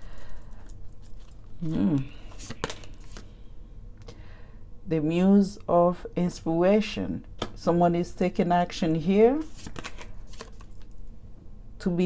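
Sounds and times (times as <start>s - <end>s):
low steady hum: 0.0s - 12.0s
cards clicking: 1.0s - 3.3s, 9.5s - 10.9s.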